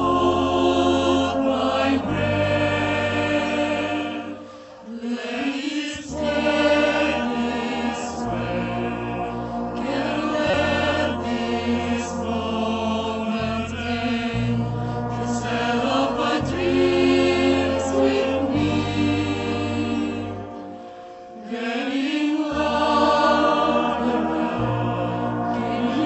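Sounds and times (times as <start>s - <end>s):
choir singing held chords: 0.0s - 26.0s.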